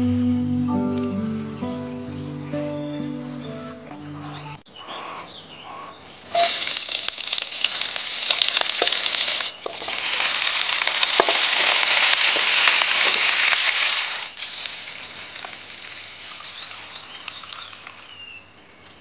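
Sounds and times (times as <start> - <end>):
meat sizzling in a wok: 6.3 - 17.0.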